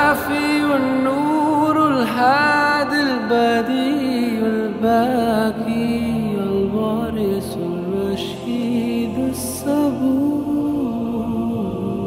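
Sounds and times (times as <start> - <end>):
man singing devotional chant: 0.0 - 12.0
soft musical accompaniment: 0.0 - 12.0.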